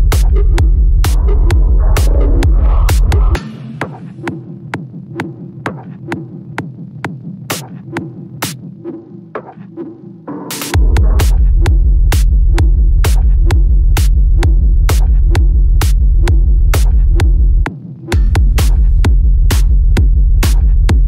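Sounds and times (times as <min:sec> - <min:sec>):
noise sweep: 0:00.0 - 0:04.4
heavy throbbing bass line: 0:00.0 - 0:21.0
techno hi-hats and percussion: 0:00.0 - 0:21.0.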